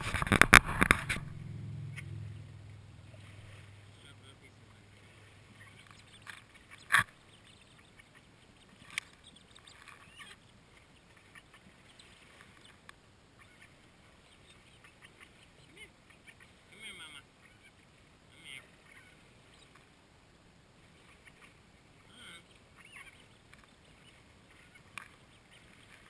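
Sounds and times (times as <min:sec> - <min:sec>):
distant motorboat engine hum: 0:00.0 - 0:20.0
duckling peeps: 0:00.4 - 0:17.8, 0:18.4 - 0:19.8, 0:20.9 - 0:26.0
duck quacking: 0:21.1 - 0:23.3.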